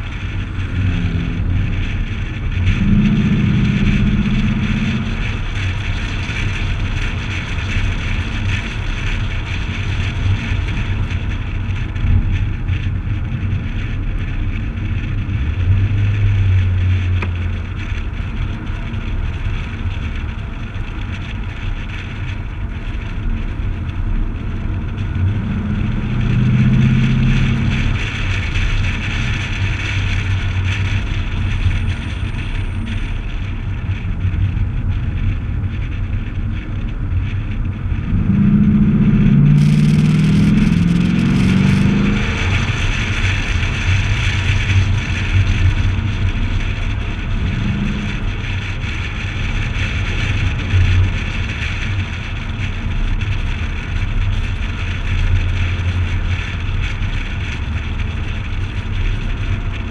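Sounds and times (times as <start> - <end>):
car engine accelerating: 0.0 - 8.5, 23.7 - 33.1, 33.9 - 51.6
wind and road rush: 0.0 - 59.9.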